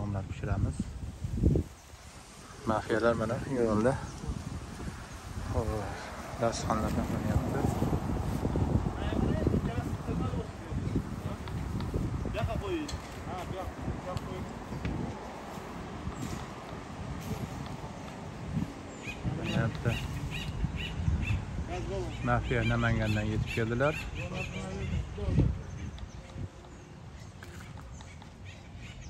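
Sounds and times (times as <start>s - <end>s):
steady outdoor rumble: 0.0s - 29.0s.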